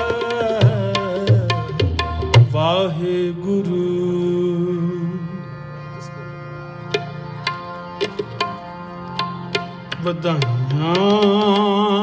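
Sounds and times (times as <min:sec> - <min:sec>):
tabla strokes: 0:00.0 - 0:03.0, 0:06.8 - 0:12.0
harmonium chord: 0:00.0 - 0:12.0.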